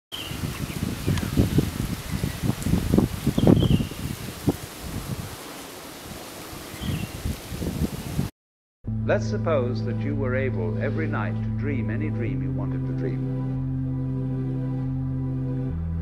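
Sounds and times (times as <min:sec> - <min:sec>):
wind gusting against microphone: 0:00.1 - 0:08.3
bird chirping: 0:03.4 - 0:04.0, 0:06.8 - 0:07.1.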